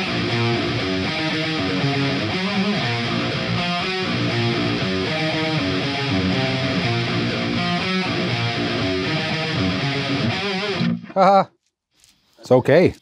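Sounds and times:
distorted electric guitar riff: 0.0s - 11.4s.

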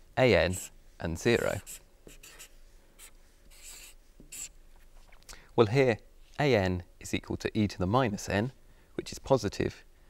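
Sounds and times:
marker scratching on board: 0.5s - 0.7s, 1.3s - 4.5s.

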